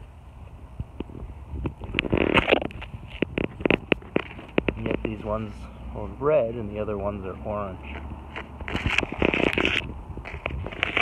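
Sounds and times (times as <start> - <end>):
leaves rustling against camera: 0.4 - 11.0.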